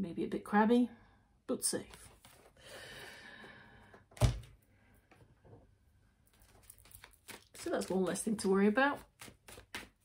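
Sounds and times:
cards rustling: 0:06.3 - 0:10.0.

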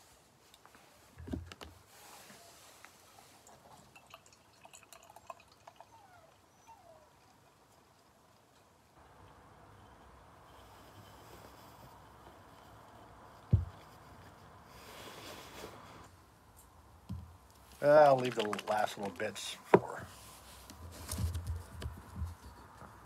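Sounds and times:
beer pouring into a glass: 0:03.8 - 0:05.9
low thump: 0:13.5 - 0:13.8.

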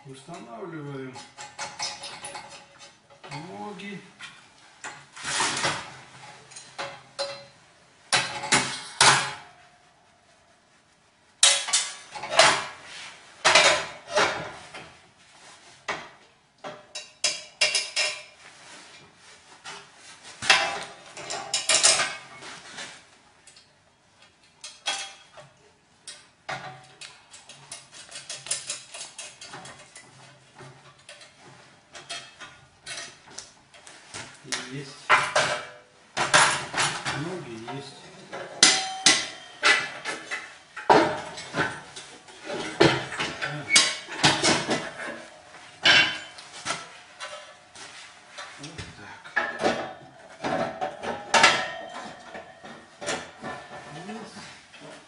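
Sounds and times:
sheet metal parts clanking: 0:00.3 - 0:09.6, 0:11.4 - 0:14.9, 0:20.4 - 0:22.9, 0:24.6 - 0:33.4, 0:34.6 - 0:55.0.

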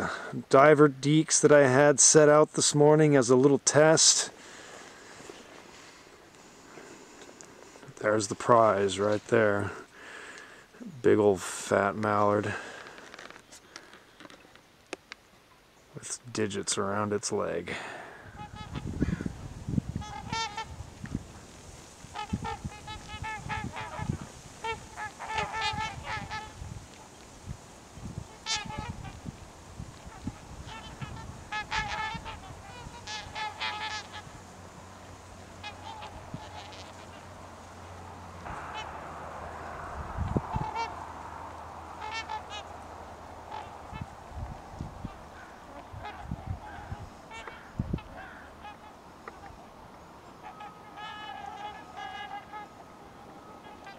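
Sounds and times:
swans honking: 0:18.3 - 0:19.1, 0:19.9 - 0:27.3, 0:28.2 - 0:53.9
rush of noise on microphone: 0:34.1 - 0:47.2.

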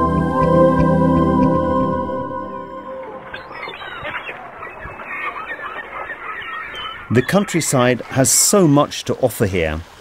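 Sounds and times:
gulls calling: 0:00.0 - 0:09.4.

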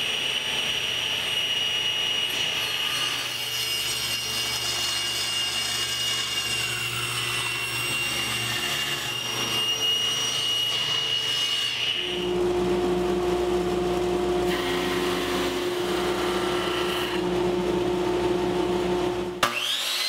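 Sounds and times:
table saw whining: 0:00.0 - 0:20.0.

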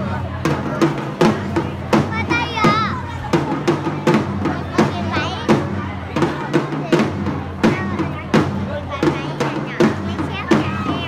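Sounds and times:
marching drums beating: 0:00.0 - 0:11.0.

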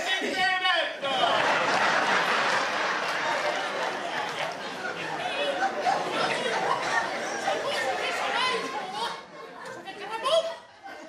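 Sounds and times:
audience chatter: 0:01.0 - 0:11.0.

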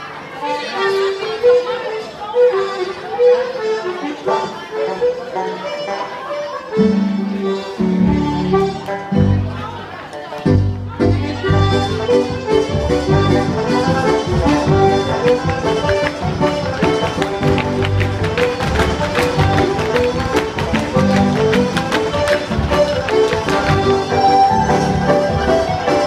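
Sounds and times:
traditional dance band playing: 0:00.0 - 0:26.0.

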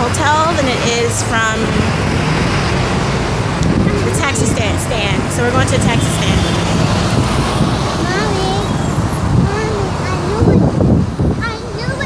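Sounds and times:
indistinct voices: 0:00.0 - 0:12.0
street traffic: 0:00.0 - 0:12.0
wind rumbling on microphone: 0:00.0 - 0:12.0.

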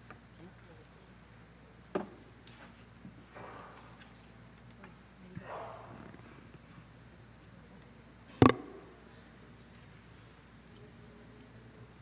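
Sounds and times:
faint murmur: 0:00.0 - 0:12.0.

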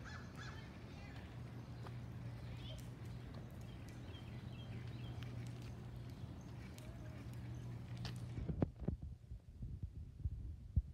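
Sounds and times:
steady low hum: 0:00.0 - 0:10.9
light footsteps: 0:00.3 - 0:08.9.

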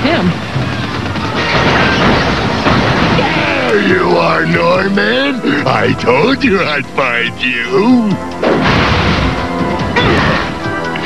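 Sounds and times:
dramatic background music: 0:00.0 - 0:11.0
loud cartoon crashes: 0:01.2 - 0:03.8, 0:08.4 - 0:10.6.

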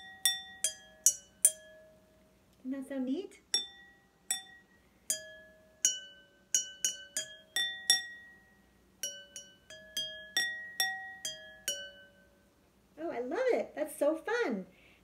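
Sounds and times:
pencil clinking water glasses: 0:00.0 - 0:01.9, 0:03.6 - 0:12.3.

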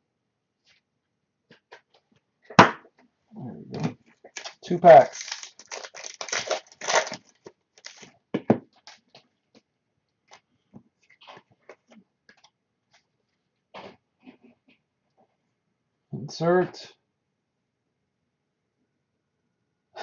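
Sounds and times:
card pack wrappers tearing: 0:04.3 - 0:08.1.

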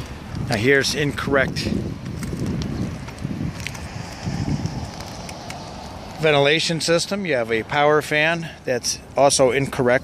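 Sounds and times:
wind buffeting microphone: 0:00.0 - 0:07.8
footsteps on asphalt shingles: 0:00.0 - 0:10.0.

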